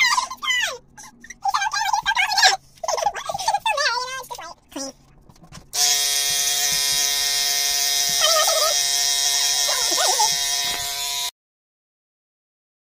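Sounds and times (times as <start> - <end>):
electric hair clippers buzzing: 5.8 - 11.3.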